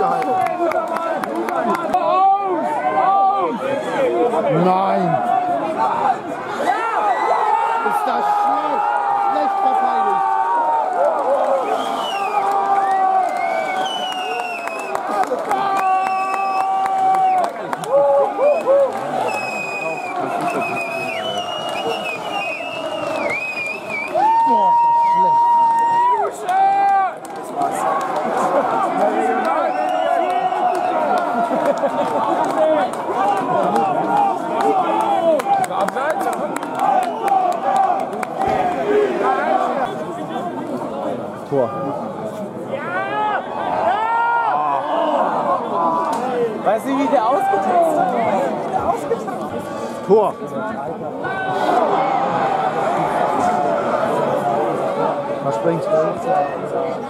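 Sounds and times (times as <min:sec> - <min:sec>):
crowd shouting and cheering: 0:00.0 - 0:57.0.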